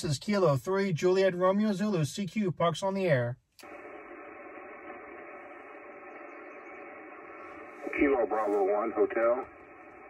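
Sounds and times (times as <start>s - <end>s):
radio static hiss: 3.6s - 10.0s.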